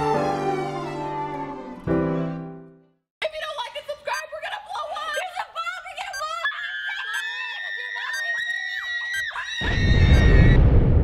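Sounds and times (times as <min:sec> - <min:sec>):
girls shouting excitedly: 0:03.6 - 0:09.8
girls screaming together: 0:06.2 - 0:10.6.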